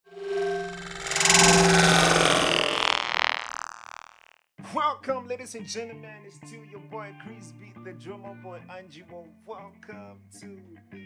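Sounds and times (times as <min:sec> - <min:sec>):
synthesized held tones: 0:00.0 - 0:04.4
loud whooshing surge: 0:00.1 - 0:04.3.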